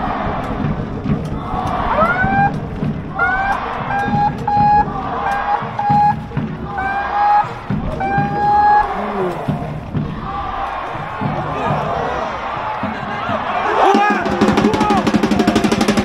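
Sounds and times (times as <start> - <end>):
crowd noise: 0.0 - 16.0
low drumbeats: 0.0 - 16.0
horn playing a chant tune: 3.2 - 9.7.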